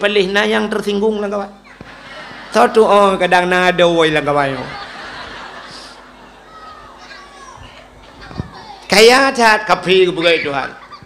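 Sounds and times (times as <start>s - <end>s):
background murmur: 1.6s - 9.1s
man speaking over loudspeakers: 2.5s - 4.8s, 8.9s - 10.8s
faint children's voices: 6.2s - 9.0s.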